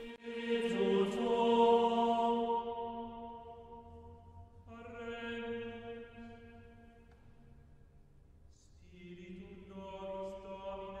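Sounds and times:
slow chant-like singing: 0.0s - 6.8s.

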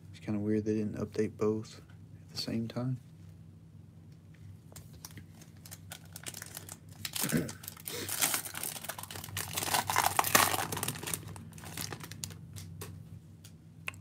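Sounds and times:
card pack wrapper crinkling and tearing: 5.0s - 12.7s.

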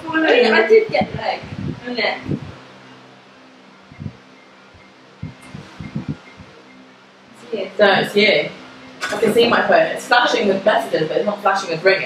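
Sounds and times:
electric fan humming: 0.0s - 12.0s.

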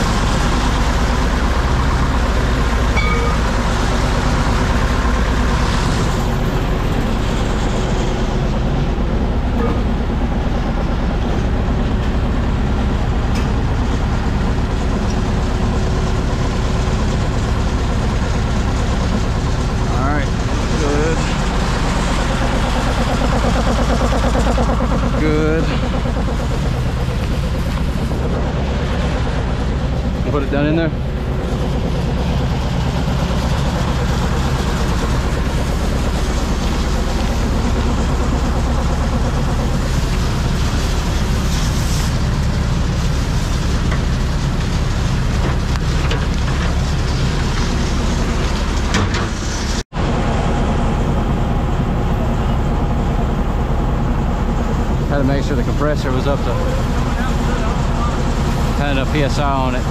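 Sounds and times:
diesel engine and pump running: 0.0s - 59.9s.

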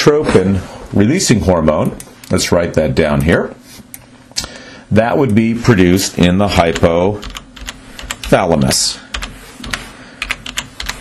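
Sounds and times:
computer keyboard typing: 6.6s - 11.0s.

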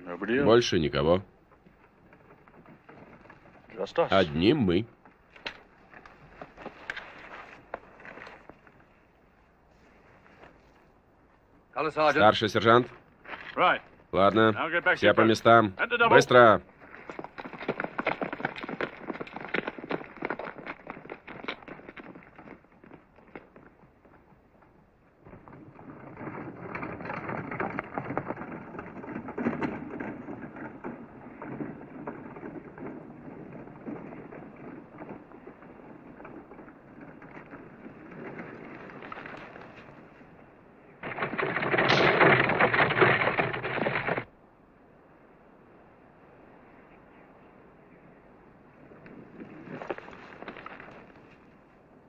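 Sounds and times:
dry grass rustling and crackling: 0.0s - 11.7s, 12.3s - 44.3s, 48.7s - 52.0s.

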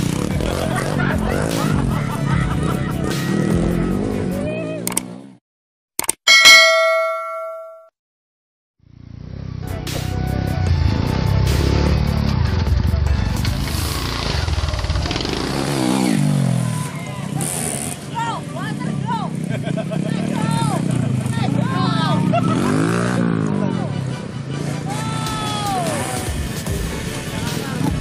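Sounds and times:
motorcycle engine revving: 0.0s - 5.4s, 8.8s - 25.0s
bright bell-like ding: 6.3s - 7.9s.

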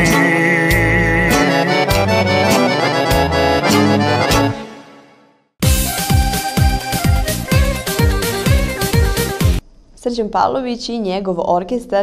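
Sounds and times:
accordion folk band playing: 0.0s - 9.6s.

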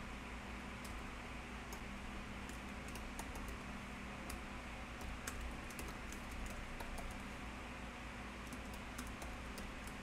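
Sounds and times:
steady low hum: 0.0s - 10.0s
keyboard keystroke clicks: 1.7s - 3.6s, 4.2s - 7.2s, 8.4s - 10.0s.

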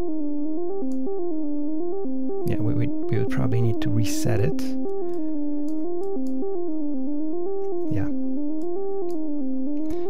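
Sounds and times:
synth tone stepping through scale: 0.0s - 10.0s.

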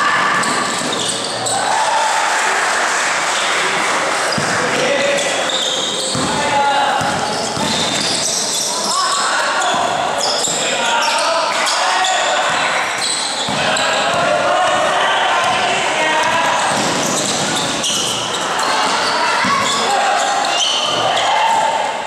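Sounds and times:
sneakers squeaking: 0.0s - 1.7s, 4.2s - 21.8s
people shouting and talking: 0.0s - 22.0s
basketball dribbling: 6.0s - 8.4s, 12.4s - 18.2s.

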